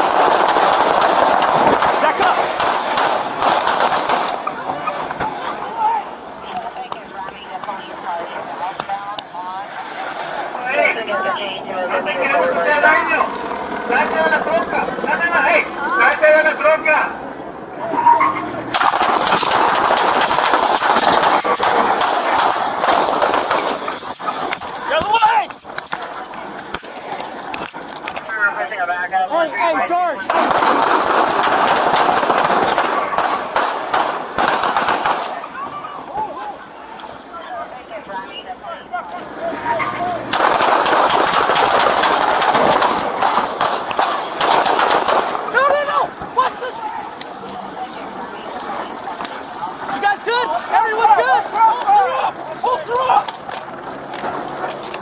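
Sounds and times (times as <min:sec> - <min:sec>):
rapid gunshots: 0:00.0 - 0:06.0, 0:18.7 - 0:25.3, 0:30.3 - 0:35.7, 0:40.3 - 0:46.9
people shouting: 0:00.0 - 0:08.6, 0:17.7 - 0:54.5.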